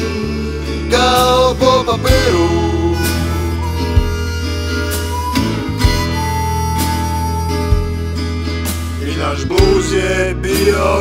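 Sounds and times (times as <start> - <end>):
acoustic guitar: 0.0 - 11.0
bass: 0.0 - 11.0
harmonica long notes: 2.0 - 9.0.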